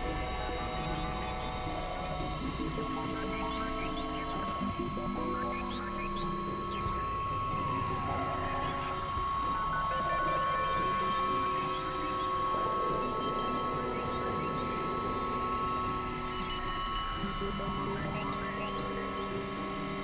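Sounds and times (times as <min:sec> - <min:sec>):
electronic drone music: 0:00.0 - 0:20.0.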